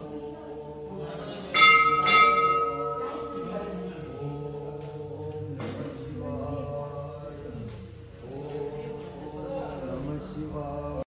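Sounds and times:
group chanting: 0.0s - 11.0s
metal temple bell ringing: 1.5s - 3.9s.

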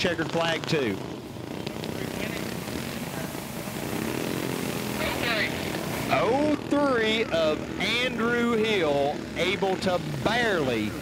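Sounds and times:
go-kart engine running: 0.0s - 11.0s.

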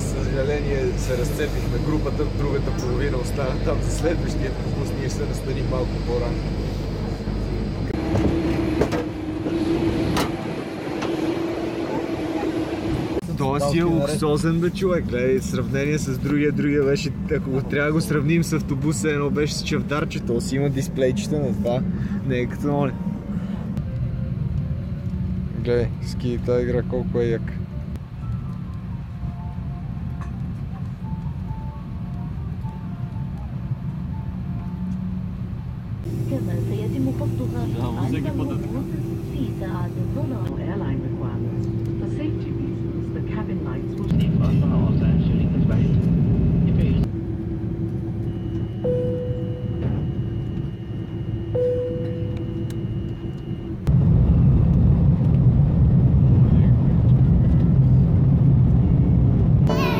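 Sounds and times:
airliner cabin rumble: 0.0s - 59.9s
steady hum: 0.0s - 59.9s
faint high-note tune: 48.3s - 53.7s.

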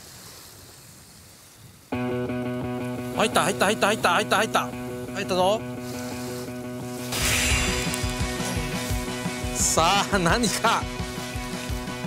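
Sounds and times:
sea surf: 0.0s - 12.0s
wind: 0.0s - 12.0s.

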